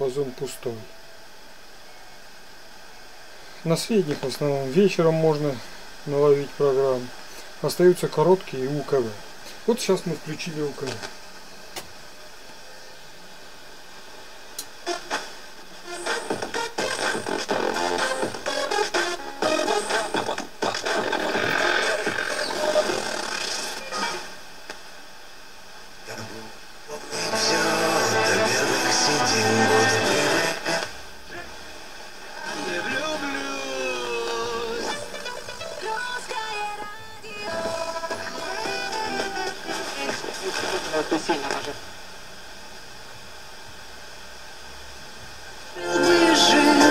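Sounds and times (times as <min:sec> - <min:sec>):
radio hiss: 0:00.0 - 0:46.9
radio music and talk: 0:03.6 - 0:11.2, 0:26.0 - 0:41.9.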